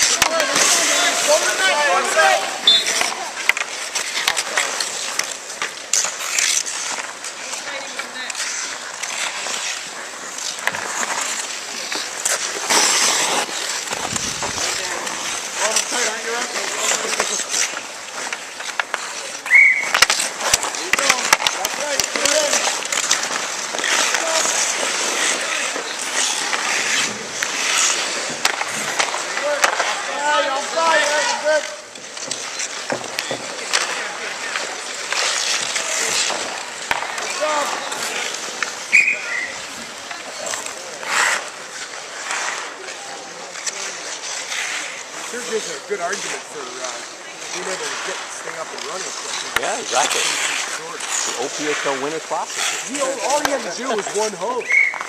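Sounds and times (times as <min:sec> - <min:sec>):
hockey sticks and puck clacking: 0:00.0 - 0:55.0
skate blades scraping ice: 0:00.0 - 0:55.0.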